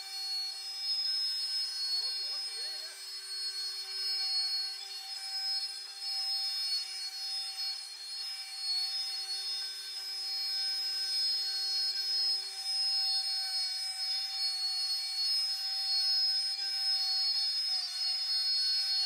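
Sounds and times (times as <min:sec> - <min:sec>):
router spindle whining: 0:00.0 - 0:19.0.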